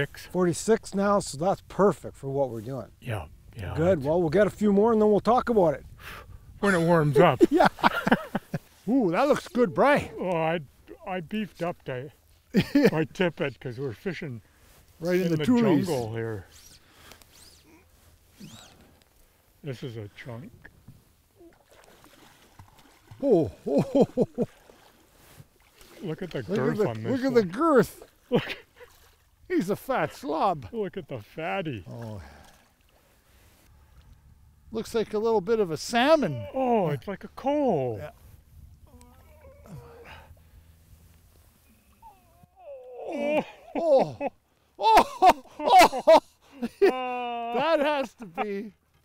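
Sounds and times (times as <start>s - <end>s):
man exclaiming ooh: 15.4s - 16.1s, 23.2s - 24.0s, 36.1s - 37.0s, 42.3s - 48.1s.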